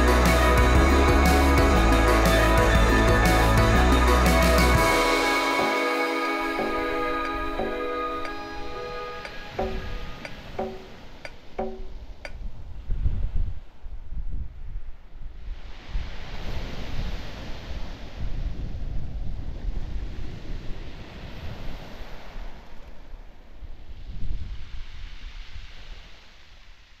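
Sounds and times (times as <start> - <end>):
surf hiss: 0.0 - 12.1, 19.7 - 27.0
wind noise on microphone: 8.8 - 26.9.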